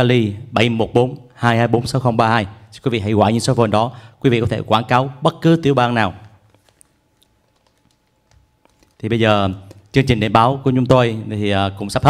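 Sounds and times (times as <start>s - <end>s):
man speaking: 0.0s - 6.4s, 9.0s - 12.0s.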